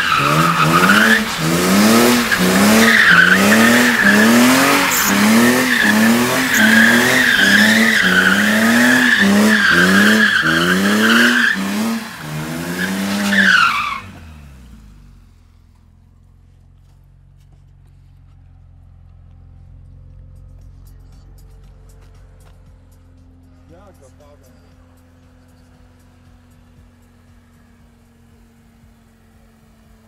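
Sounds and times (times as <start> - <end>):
tyre squeal: 0.0 - 12.1, 12.7 - 14.1
car engine revving: 0.0 - 17.0.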